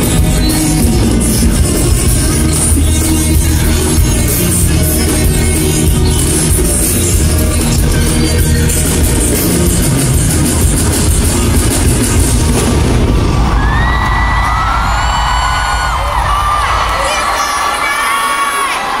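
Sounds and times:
pop dance music with heavy bass: 0.0s - 14.4s
crowd screaming: 12.5s - 19.0s.

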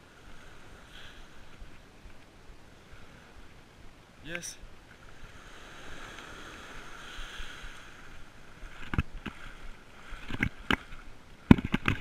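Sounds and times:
waves washing on sandy shore: 0.0s - 12.0s
wind on microphone: 5.1s - 12.0s.

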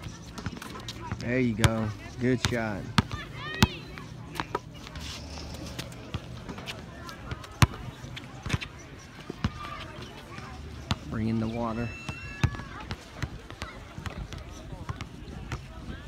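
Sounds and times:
faint voices: 0.0s - 16.0s
basketball bouncing on hard court: 0.4s - 4.6s, 7.3s - 8.7s.

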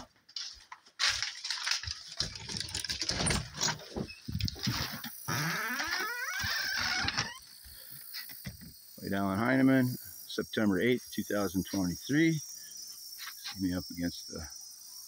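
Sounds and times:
rising squeal: 5.3s - 7.5s.

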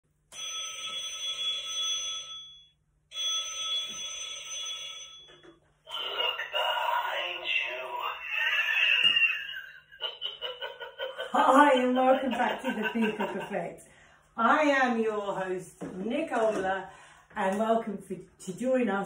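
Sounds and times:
telephone ringing: 0.3s - 10.8s
person speaking: 5.9s - 9.6s, 11.2s - 19.0s.

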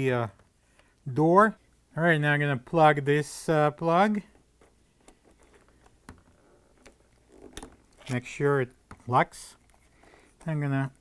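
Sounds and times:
handling noise: 4.3s - 11.0s.

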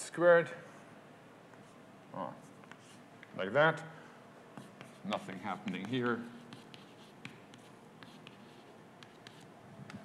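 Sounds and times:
chalk tapping and scratching: 2.4s - 3.0s, 4.5s - 10.0s.

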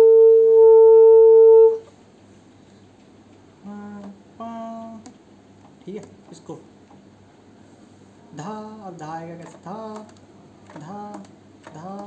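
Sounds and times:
saxophone long note: 0.0s - 1.8s.

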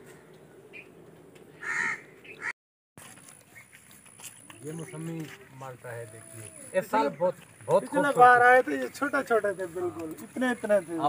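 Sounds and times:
crow cawing: 1.6s - 2.5s.

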